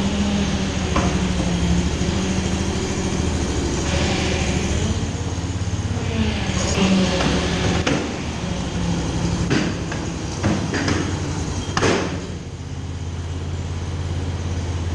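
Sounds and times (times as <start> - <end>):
engine and hydraulic hum: 0.0 - 14.9.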